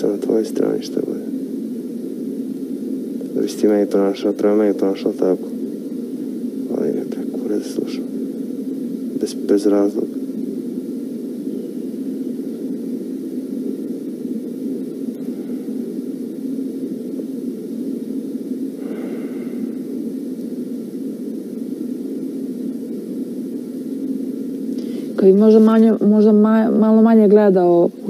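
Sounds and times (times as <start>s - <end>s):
low rushing noise with hum: 0.0s - 28.0s.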